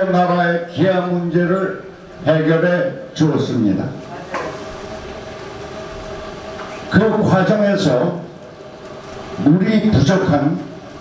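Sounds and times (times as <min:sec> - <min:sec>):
man speaking: 0:06.9 - 0:08.3, 0:09.4 - 0:10.7.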